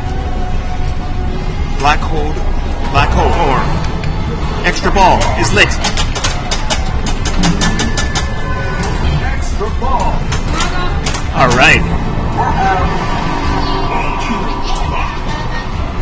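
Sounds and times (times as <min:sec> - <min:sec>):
pinball soundtrack music: 0:00.0 - 0:16.0
electronic sweeping sound effects: 0:11.6 - 0:16.0.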